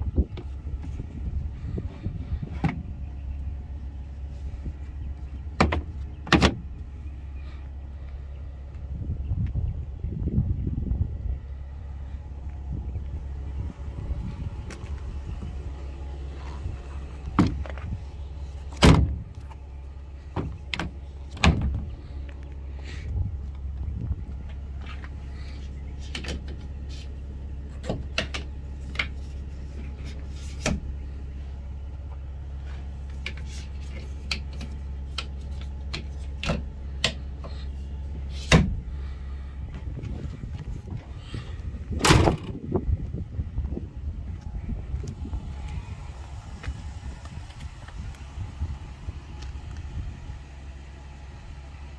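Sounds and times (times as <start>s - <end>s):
steady low rumble: 0.0s - 51.9s.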